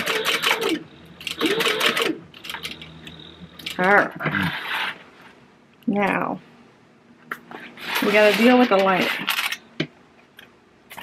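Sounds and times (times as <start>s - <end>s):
sewing machine stitching: 0.0s - 2.9s.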